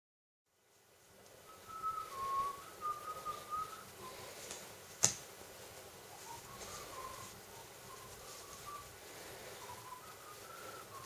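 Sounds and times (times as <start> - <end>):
person whistling a tune: 1.5 - 4.3, 6.2 - 8.9, 9.6 - 11.0.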